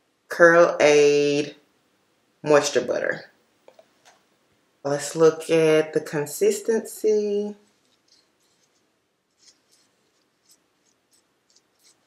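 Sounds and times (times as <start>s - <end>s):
scratchy handling of a jar: 7.6s - 12.0s.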